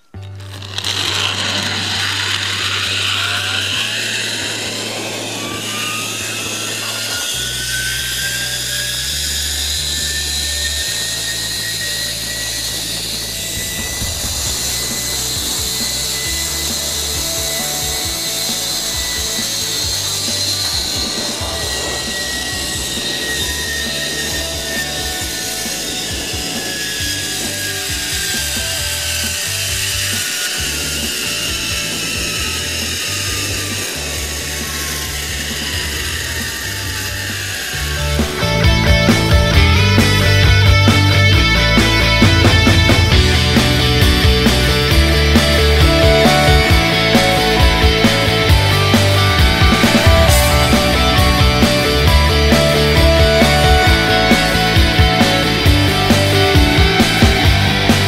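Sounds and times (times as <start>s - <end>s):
zipline pulleys whirring on cable: 0.0s - 58.0s.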